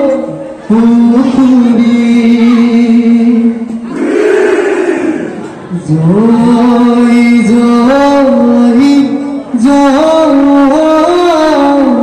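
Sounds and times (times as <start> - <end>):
loud group shout: 3.9 - 5.5.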